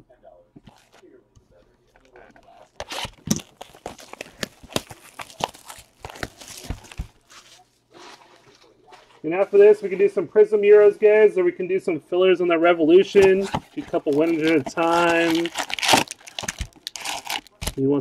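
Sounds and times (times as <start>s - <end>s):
plastic wrap crackling: 2.1s - 8.7s, 13.1s - 17.9s.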